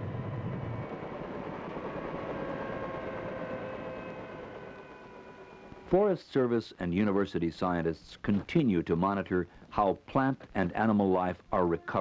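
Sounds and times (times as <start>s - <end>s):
helicopter engine and rotor: 0.0s - 6.0s.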